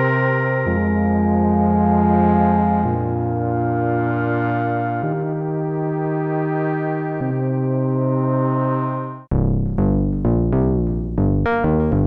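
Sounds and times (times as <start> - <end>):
synthesizer brass chords: 0.0 - 9.3.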